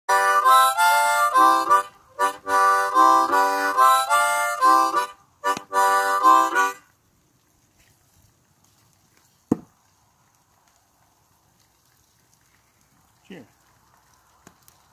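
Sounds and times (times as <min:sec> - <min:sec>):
blues harmonica chords: 0:00.1 - 0:06.9.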